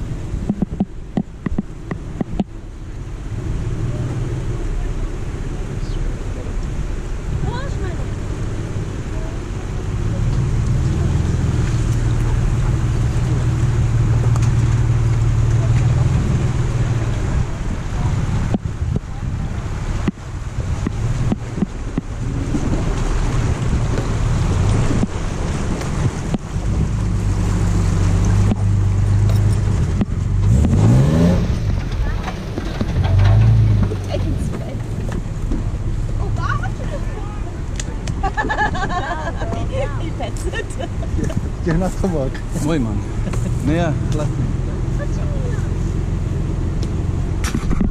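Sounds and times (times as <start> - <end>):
off-road vehicle engine revving: 0.0 - 47.9.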